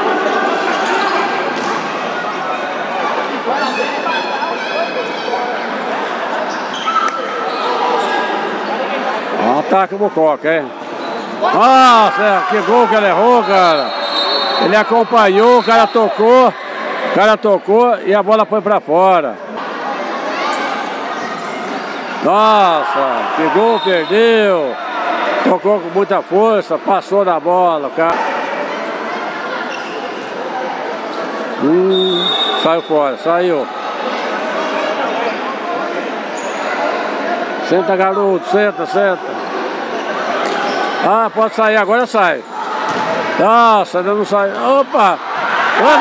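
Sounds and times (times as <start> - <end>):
echoing crowd voices: 0.0 - 46.0.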